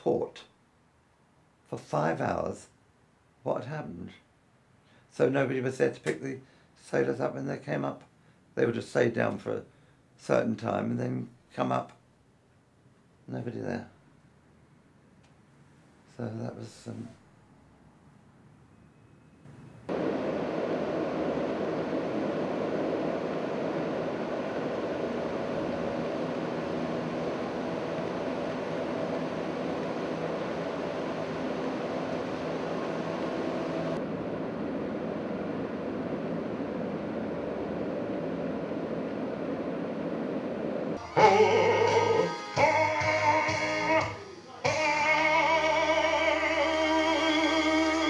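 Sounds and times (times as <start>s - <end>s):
steady rushing noise: 19.9s - 48.0s.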